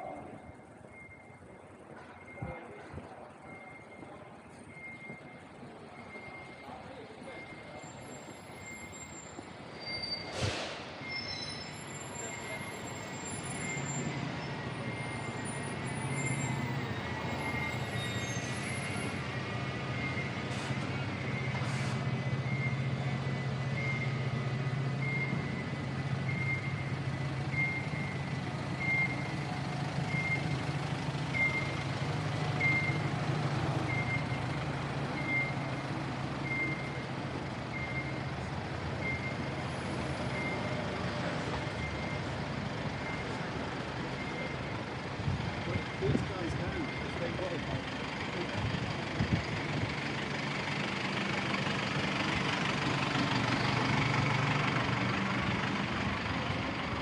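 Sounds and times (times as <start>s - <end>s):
vehicle reversing alarm beeping: 0.0s - 10.4s, 11.0s - 57.0s
idling engines in traffic: 0.0s - 57.0s.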